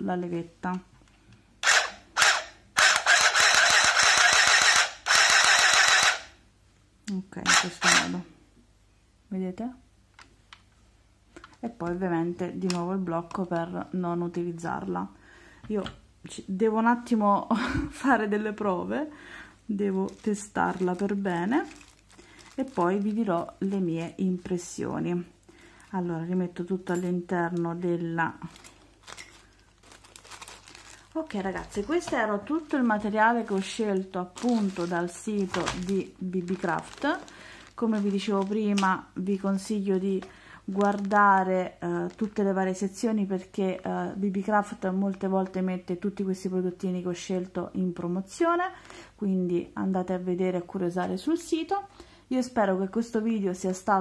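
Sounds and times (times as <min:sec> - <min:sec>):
sewing machine stitching: 0:01.6 - 0:06.3
plastic bag crinkling: 0:19.7 - 0:24.6, 0:28.2 - 0:42.5.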